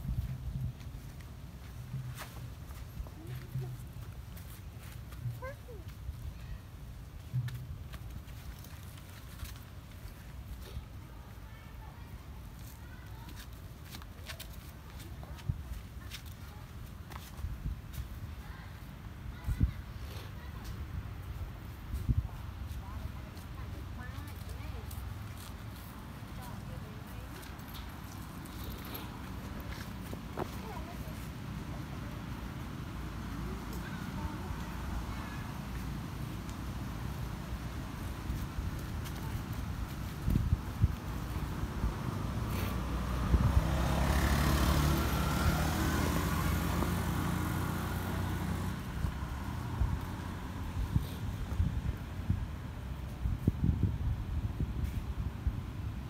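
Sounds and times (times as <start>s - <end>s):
vehicle driving past: 41.4s - 51.1s.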